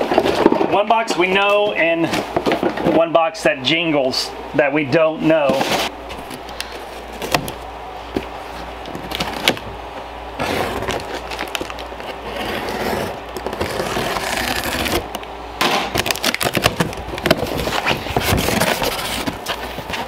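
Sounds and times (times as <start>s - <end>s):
box cutter slicing tape: 10.4s - 15.2s
tape and cardboard tearing: 10.4s - 20.0s.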